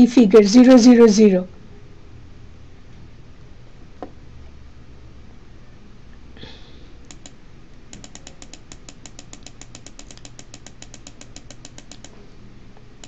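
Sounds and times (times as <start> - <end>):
computer mouse clicking: 7.0 - 12.2.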